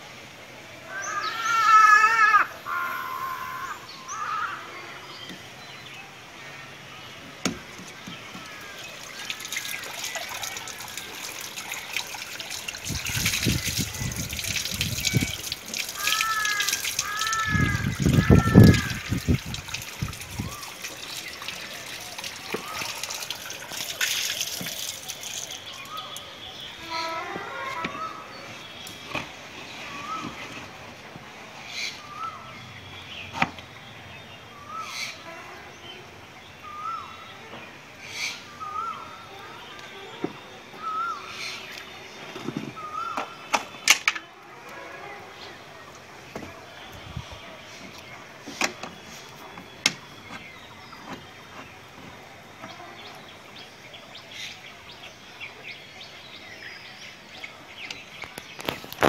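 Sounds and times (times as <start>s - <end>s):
water splashing onto concrete: 7.5s - 26.3s.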